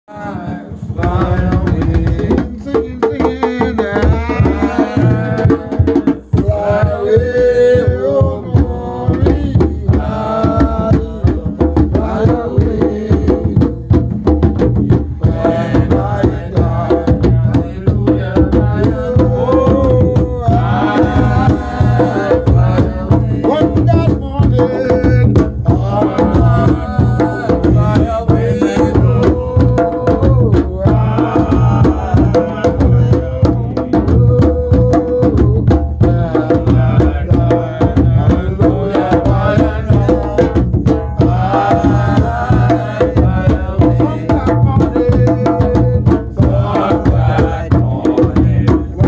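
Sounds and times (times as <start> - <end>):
men chanting: 0.0 - 49.0
group hand drumming: 0.1 - 49.0
voices singing: 0.1 - 49.0.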